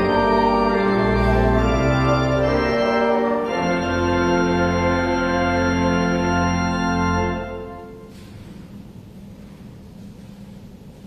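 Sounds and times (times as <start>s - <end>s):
organ playing sustained chords: 0.0s - 8.1s.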